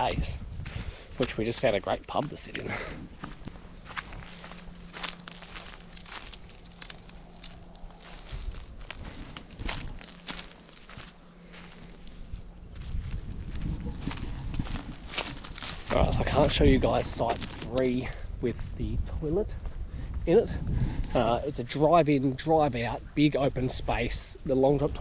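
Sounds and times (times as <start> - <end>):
faint low hum: 0.0 - 25.0
footsteps on dry leaf litter: 0.6 - 18.2.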